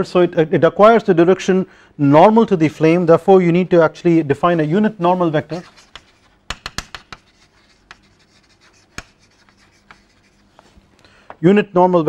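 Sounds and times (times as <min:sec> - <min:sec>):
chalk scratching on blackboard: 0:05.0 - 0:10.8
chalk tapping on blackboard: 0:05.4 - 0:10.7.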